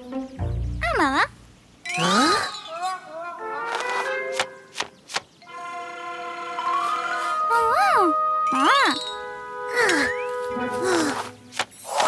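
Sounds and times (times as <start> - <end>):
cartoon background music: 0.0 - 1.4, 5.4 - 11.4
cartoon character's wordless voice: 0.8 - 1.4.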